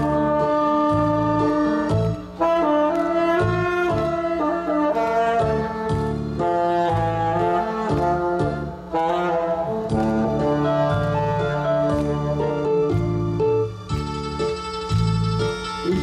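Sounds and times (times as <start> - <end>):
backing track with bass beat: 0.0 - 16.0
tenor saxophone melody: 0.0 - 16.0.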